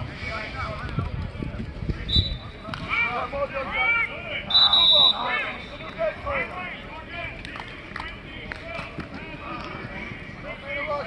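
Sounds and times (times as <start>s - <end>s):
whistle blast: 2.1s - 2.5s, 4.5s - 5.8s.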